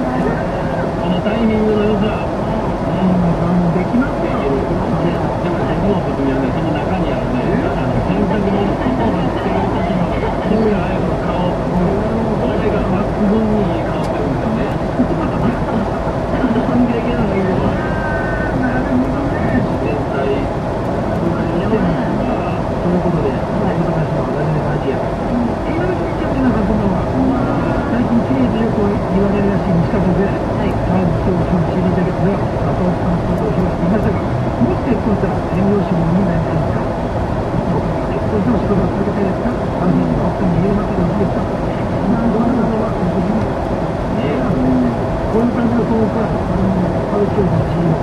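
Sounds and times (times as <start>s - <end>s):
car road and engine noise: 0.0s - 48.0s
muffled low talking: 0.0s - 48.0s.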